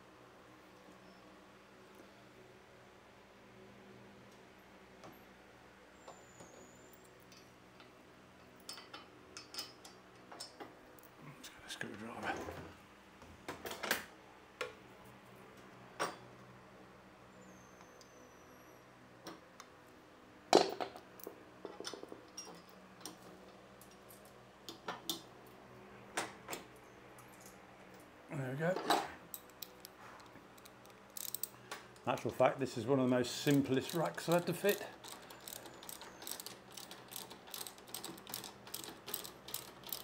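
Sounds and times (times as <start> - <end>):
metal clinks and knocks: 21.6 - 23.3.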